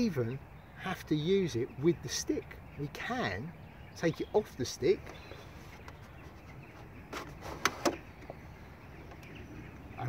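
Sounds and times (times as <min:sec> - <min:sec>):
plastic clicking and scraping on wood: 0:05.0 - 0:08.4.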